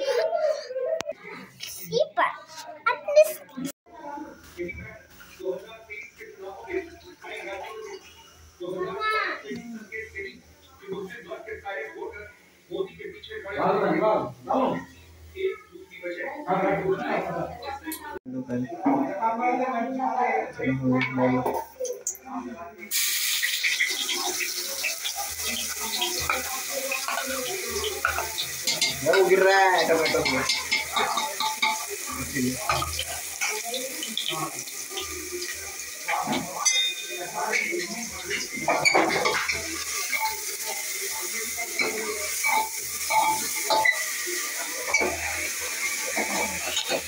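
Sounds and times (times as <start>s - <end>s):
oil sizzling in a pot: 4.3s - 13.9s, 22.9s - 47.0s.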